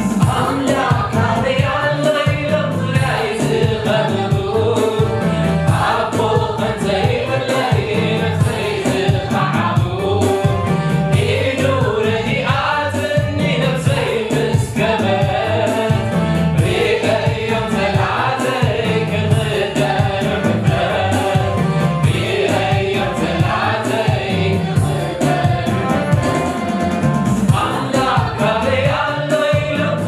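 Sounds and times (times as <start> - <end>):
man singing: 0.0 - 10.6, 11.2 - 26.8, 27.5 - 30.0
choir singing: 0.0 - 30.0
instrumental backing with bass and beat: 0.0 - 30.0.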